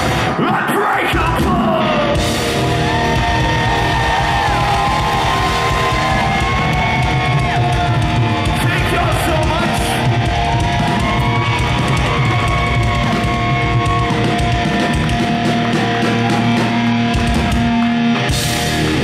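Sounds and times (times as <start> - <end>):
live rock band playing: 0.0 - 0.5, 1.1 - 19.0.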